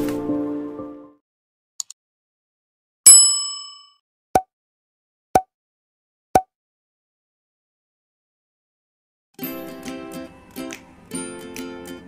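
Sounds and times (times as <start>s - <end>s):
notification bell ding: 3.1s - 3.9s.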